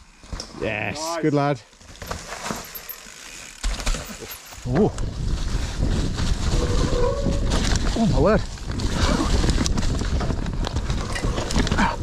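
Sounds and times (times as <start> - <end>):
bike tyres crunching on leaves: 1.7 - 11.8
bike clicking and rattling: 1.7 - 12.0.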